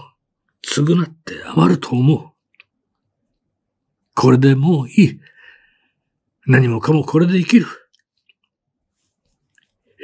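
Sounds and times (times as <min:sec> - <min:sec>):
man reading aloud: 0:00.0 - 0:02.4, 0:04.1 - 0:05.4, 0:06.4 - 0:07.9.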